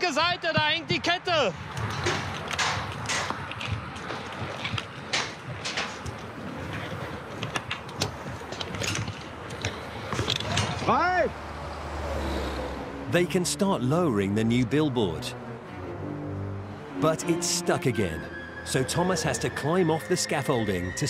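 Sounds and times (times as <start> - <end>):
metallic knocks and clanks: 1.8 - 6.3.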